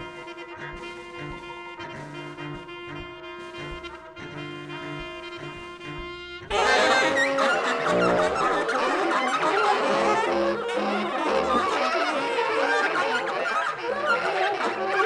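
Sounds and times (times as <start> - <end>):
free jazz ensemble improvising: 0.0 - 15.0.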